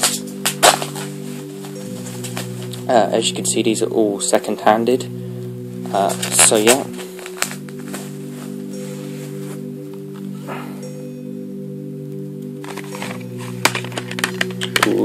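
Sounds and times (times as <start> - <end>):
background music of held chords: 0.0 - 15.0.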